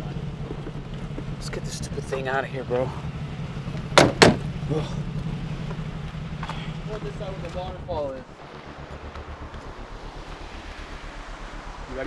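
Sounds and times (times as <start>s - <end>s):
pulsing low rumble: 0.0s - 12.0s.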